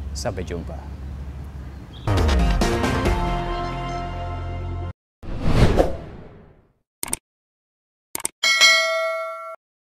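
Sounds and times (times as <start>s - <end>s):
quick clicks: 7.0s - 7.2s, 8.2s - 8.4s
bright bell-like chime: 8.4s - 9.6s.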